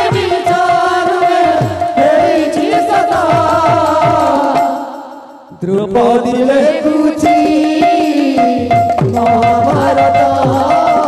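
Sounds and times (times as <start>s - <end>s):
drum strokes: 0.0s - 11.0s
person singing: 0.0s - 11.0s.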